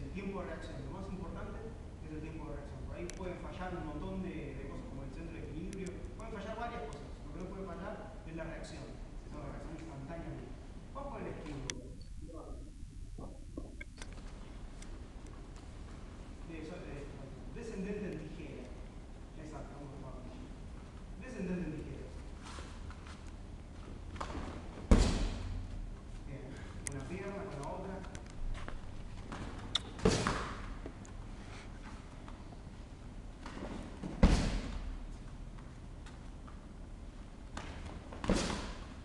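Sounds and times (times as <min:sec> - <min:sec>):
low rumbling background noise: 0:00.0 - 0:39.0
light click: 0:03.0 - 0:03.2
kick smacking striking shield: 0:24.9 - 0:25.5
sharp click: 0:29.7 - 0:30.0.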